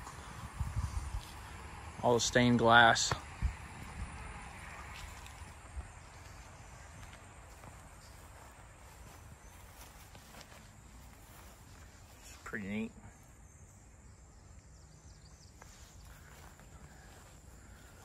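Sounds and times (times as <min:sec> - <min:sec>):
soft footsteps: 0:04.8 - 0:12.5, 0:15.4 - 0:18.0.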